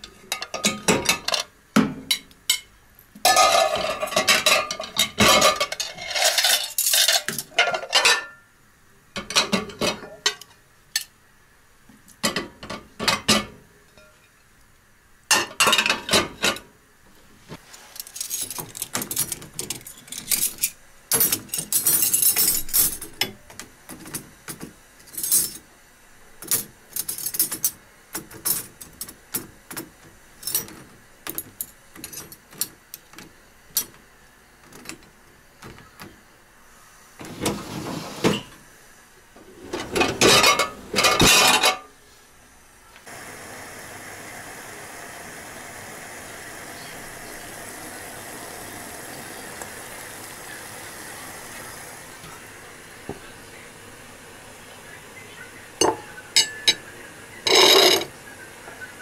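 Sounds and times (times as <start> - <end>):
steady even hiss: 0.0 - 41.2, 41.8 - 59.0
dishwasher rack clattering: 3.3 - 8.4, 9.2 - 10.4, 37.2 - 38.6, 39.4 - 41.9, 57.5 - 58.1
metal cutlery clinking: 3.3 - 8.4, 18.0 - 23.3, 39.9 - 41.9, 57.5 - 58.1
dishwasher door closing: 37.2 - 38.6, 39.4 - 41.5.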